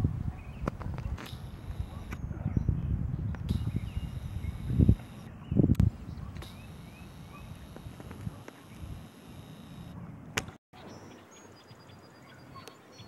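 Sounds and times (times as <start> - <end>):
wind buffeting microphone: 0.0 - 9.1
faint clicks: 6.4 - 9.9.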